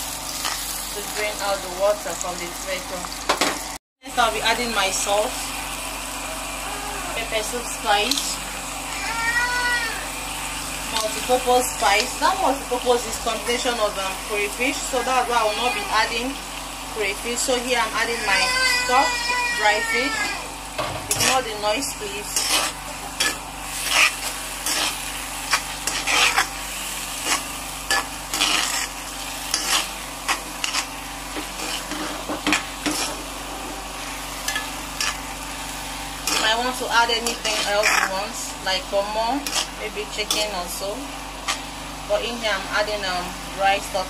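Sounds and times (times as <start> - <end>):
sauce sizzling: 0.0 - 44.0
cat meowing: 8.9 - 10.0
spoon scraping a wok: 21.0 - 35.3, 36.2 - 38.3, 39.4 - 40.6.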